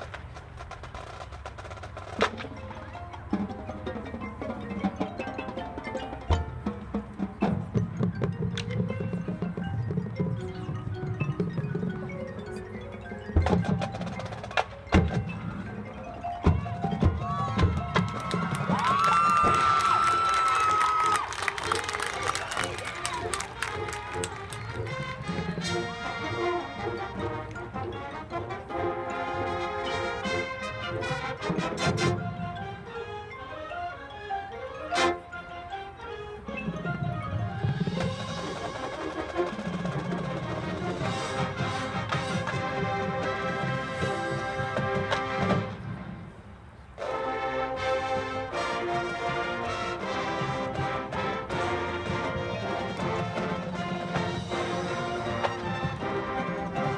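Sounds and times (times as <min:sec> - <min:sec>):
percussion hits: 0:00.0 - 0:32.6, 0:36.7 - 0:47.2
marching band playing: 0:00.0 - 0:56.9.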